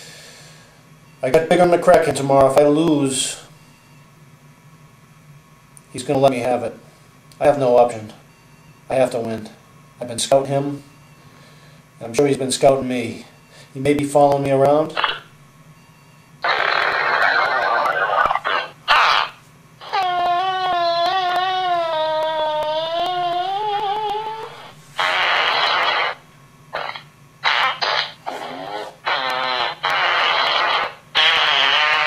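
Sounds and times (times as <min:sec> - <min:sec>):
fart noises: 0:14.9 - 0:15.3, 0:16.4 - 0:32.0.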